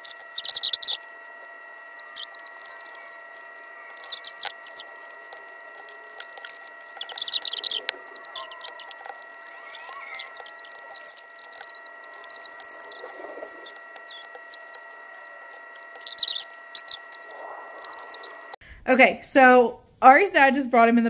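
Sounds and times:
faint steady high whine: 0.0 - 18.6
sticker sheet crinkling: 0.0 - 18.6.

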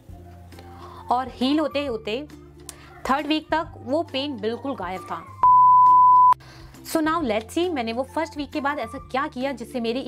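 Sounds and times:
high electronic beep: 5.4 - 6.4.

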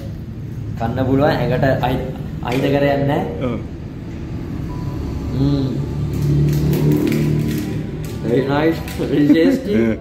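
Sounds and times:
man humming: 5.3 - 6.0.

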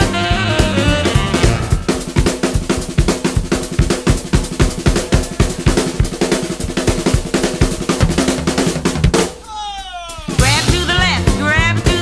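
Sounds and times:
drum kit steady beat: 0.0 - 12.0.

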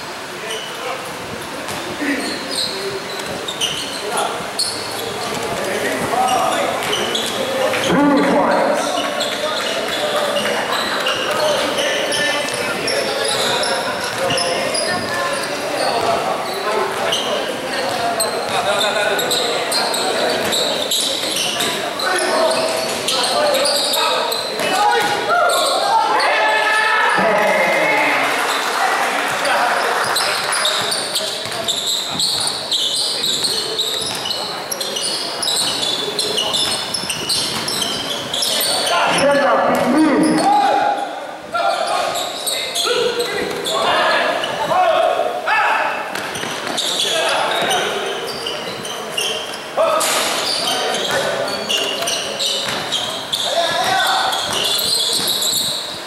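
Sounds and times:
basketball bouncing on court: 30.8 - 32.6, 33.3 - 34.4, 36.4 - 38.2, 52.6 - 53.0, 53.8 - 55.8.

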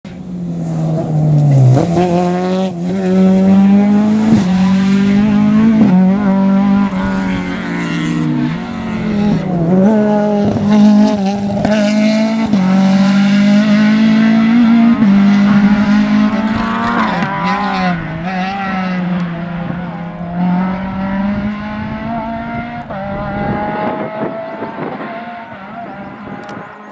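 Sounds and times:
rally car engine revving: 0.1 - 26.9.

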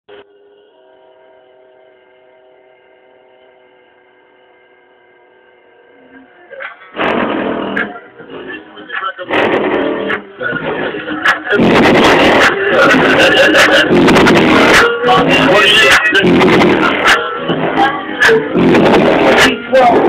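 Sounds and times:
bass-heavy music from car stereo: 4.7 - 20.0.

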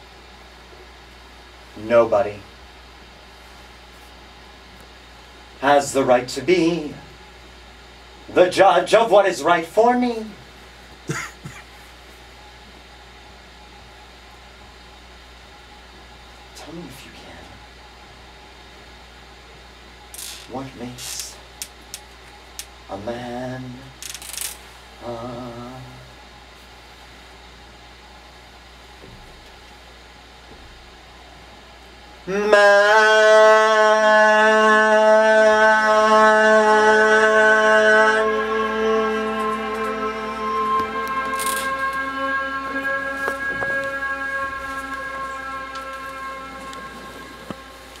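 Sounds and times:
steady low hum: 0.0 - 48.0
person singing held note: 38.2 - 48.0.

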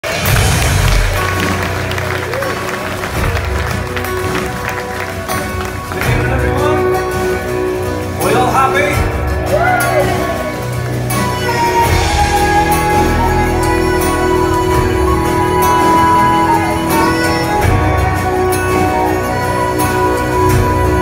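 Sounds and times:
audience clapping: 0.0 - 21.0
audience voices: 0.0 - 21.0
live band playing: 0.0 - 21.0.

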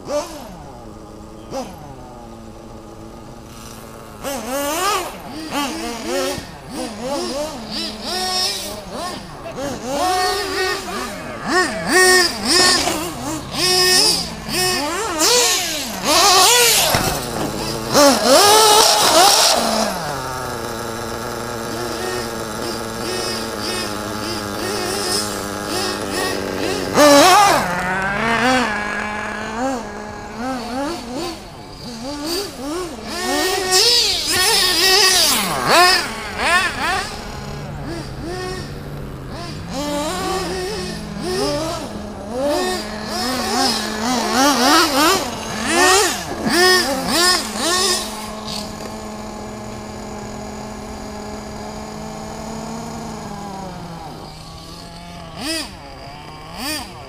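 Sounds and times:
radio-controlled car motors: 0.0 - 57.0.

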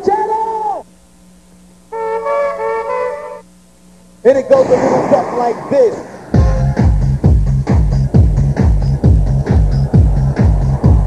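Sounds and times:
faint steady hum: 0.0 - 11.0
sustained wind instrument chord: 1.9 - 3.5.

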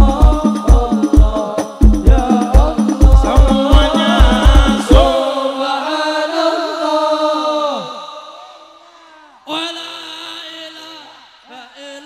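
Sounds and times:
drum beat: 0.0 - 5.2
voices singing held note: 0.0 - 12.0.

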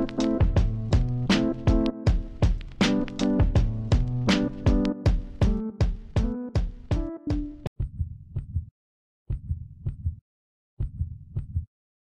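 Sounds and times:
music with a beat: 0.0 - 7.7
heartbeat-like pulses with ticks: 0.4 - 2.8, 3.4 - 8.7, 9.3 - 10.2, 10.8 - 11.7.

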